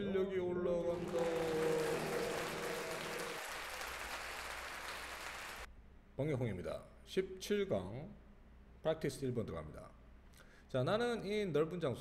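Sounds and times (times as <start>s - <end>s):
crowd applause: 0.9s - 5.7s.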